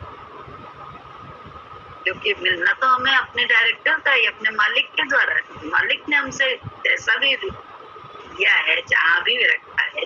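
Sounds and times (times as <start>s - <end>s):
faint high hum: 0.0s - 10.0s.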